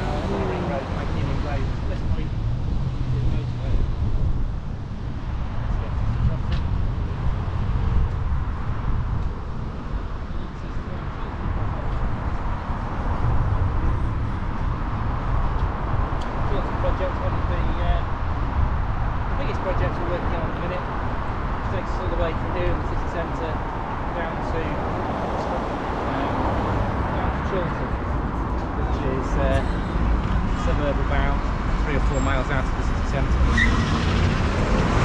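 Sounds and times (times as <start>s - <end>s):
road traffic noise: 0.0s - 35.0s
wind rumble at microphone: 0.0s - 35.0s.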